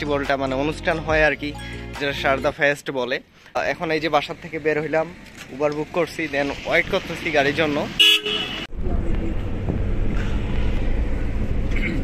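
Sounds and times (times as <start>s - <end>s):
car engine and tyres rumbling: 3.2s - 12.0s
vehicle horn blast: 8.0s - 8.7s.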